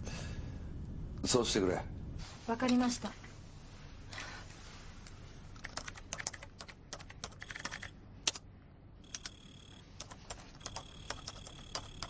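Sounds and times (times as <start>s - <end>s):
laptop keyboard typing: 5.6s - 8.4s, 9.0s - 12.0s.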